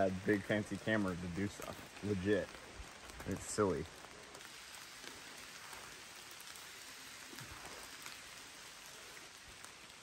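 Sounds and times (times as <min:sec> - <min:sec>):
light rain on foliage: 0:00.0 - 0:10.0.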